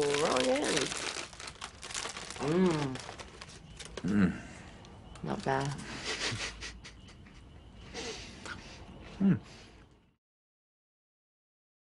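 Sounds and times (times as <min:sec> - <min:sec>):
crackers crunching: 0:00.0 - 0:04.2.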